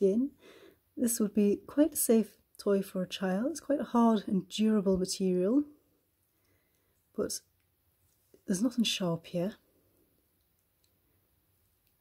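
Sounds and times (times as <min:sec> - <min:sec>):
faint clicks: 0:10.4 - 0:11.1.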